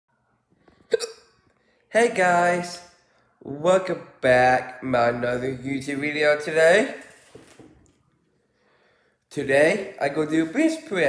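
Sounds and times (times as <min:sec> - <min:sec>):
hiccup-like mouth sound: 0:00.9 - 0:01.3
person speaking: 0:01.9 - 0:07.6, 0:09.3 - 0:11.0.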